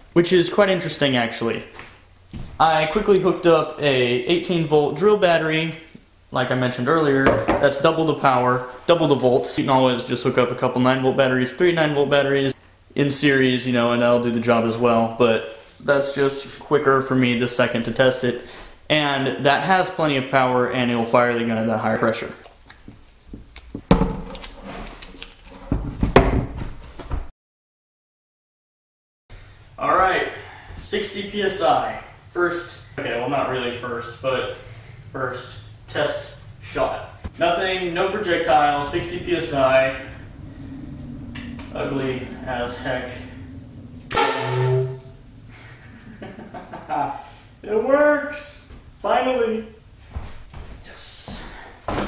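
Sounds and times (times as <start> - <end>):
air cannon blast: 44.1 - 45.3.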